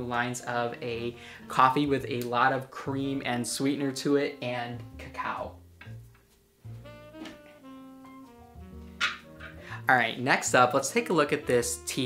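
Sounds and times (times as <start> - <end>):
slow held-note background music: 0.0 - 12.0.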